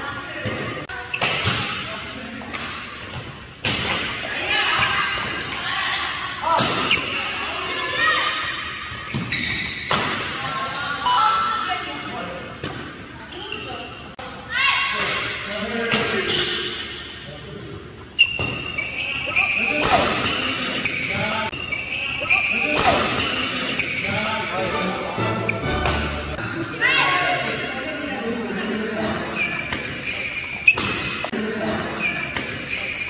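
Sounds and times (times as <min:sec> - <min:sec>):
sneakers squeaking on floor: 0:02.6 - 0:05.7, 0:06.5 - 0:07.4, 0:08.4 - 0:10.2, 0:11.1 - 0:14.2, 0:16.1 - 0:17.2, 0:17.8 - 0:24.4, 0:29.1 - 0:31.3, 0:31.9 - 0:33.0.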